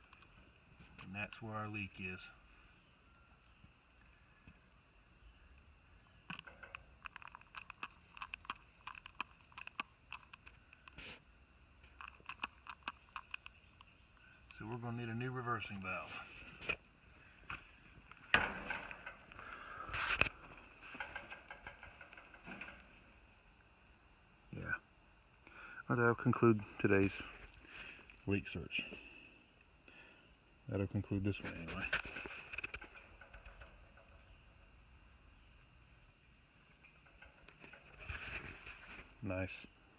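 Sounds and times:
light scraping: 0:06.3 - 0:23.0, 0:31.3 - 0:34.3, 0:36.8 - 0:39.2
light clicks and rustles: 0:11.8 - 0:23.3, 0:31.2 - 0:34.5, 0:36.7 - 0:39.3.

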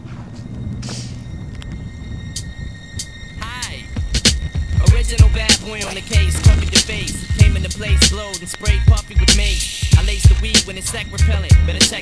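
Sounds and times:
wind on microphone: 0:00.0 - 0:11.2
faint high whine: 0:00.0 - 0:12.0
camera rolling over asphalt: 0:00.1 - 0:09.1.

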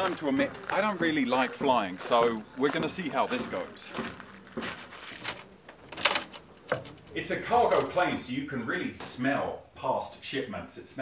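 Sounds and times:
footsteps: 0:00.0 - 0:08.3.

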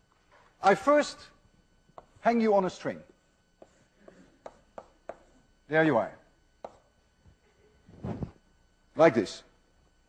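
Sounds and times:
chalk tapping blackboard: 0:03.6 - 0:05.4, 0:06.6 - 0:06.9
noisy scuff: 0:07.9 - 0:08.4.

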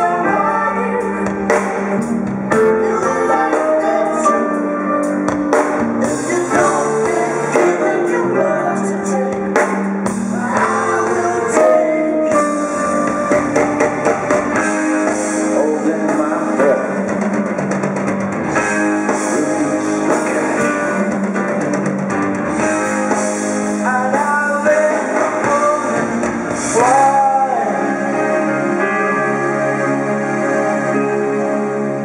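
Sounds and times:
person singing: 0:00.0 - 0:05.2, 0:06.0 - 0:13.3, 0:19.1 - 0:21.4, 0:23.8 - 0:29.5
live rock band playing: 0:00.0 - 0:32.0.

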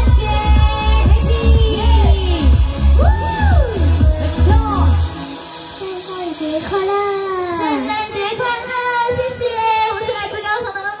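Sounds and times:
woman singing into microphone: 0:00.0 - 0:05.0
dance music with steady beat: 0:00.0 - 0:08.6.

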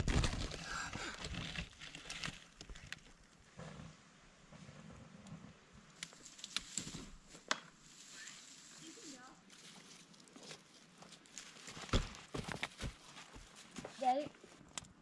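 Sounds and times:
campfire crackling: 0:05.9 - 0:13.8.

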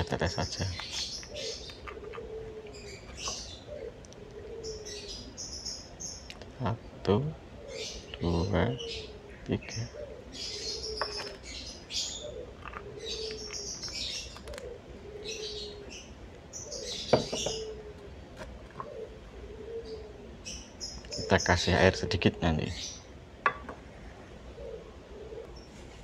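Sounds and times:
birds chirping shrilly: 0:00.0 - 0:26.0.

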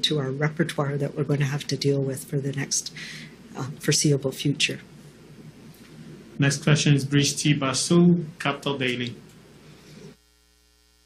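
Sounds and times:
faint electrical mains hum: 0:00.0 - 0:11.0
faint room noise: 0:00.0 - 0:11.0.

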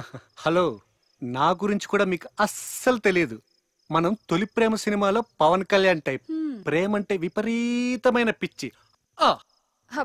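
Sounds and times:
man speaking: 0:00.0 - 0:09.5
faint crickets chirping: 0:00.0 - 0:10.0.

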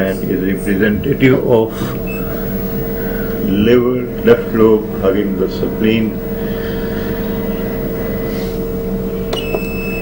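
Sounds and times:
steady machine hum: 0:00.0 - 0:10.0.

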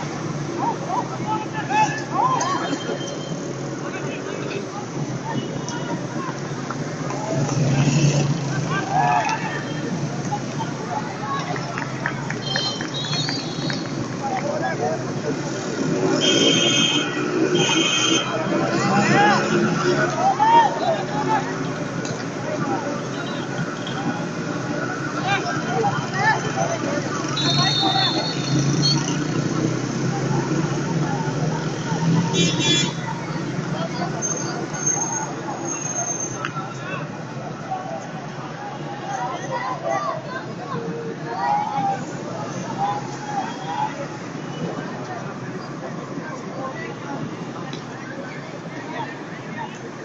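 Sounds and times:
low hum of traffic: 0:00.0 - 0:50.0.

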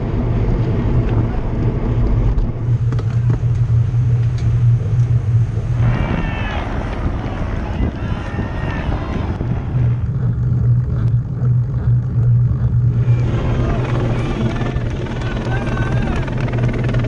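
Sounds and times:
low engine drone: 0:00.0 - 0:17.0
wind on microphone: 0:00.0 - 0:17.0
faint voices: 0:05.5 - 0:10.1, 0:13.0 - 0:17.0.

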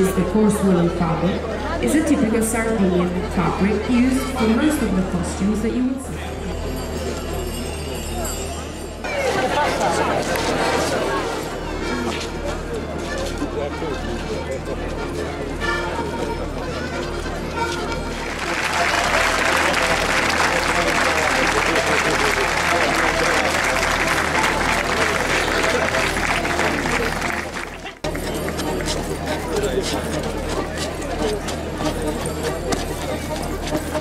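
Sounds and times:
crowd voices: 0:00.0 - 0:34.0
folk dance music: 0:09.0 - 0:34.0.

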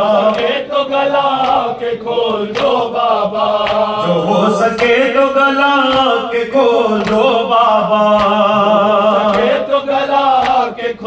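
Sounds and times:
man chanting long held notes: 0:04.0 - 0:09.3.

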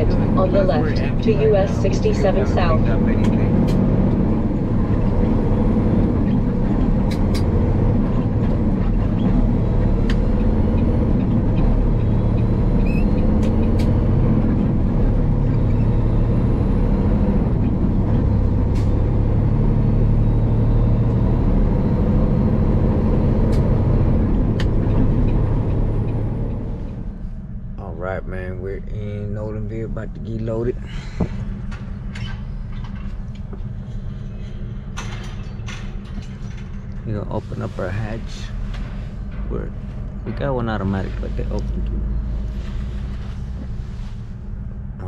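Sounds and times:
truck engine and road drone: 0:00.0 - 0:45.0.

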